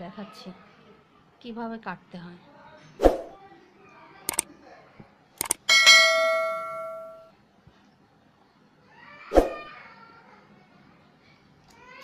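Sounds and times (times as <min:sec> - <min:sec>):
notification bell ding: 0:05.7 - 0:07.3.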